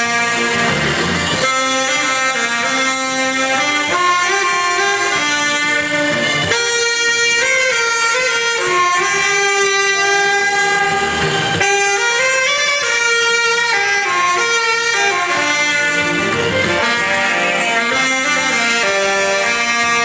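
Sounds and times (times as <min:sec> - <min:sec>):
saxophones playing slow melody: 0:00.0 - 0:20.0.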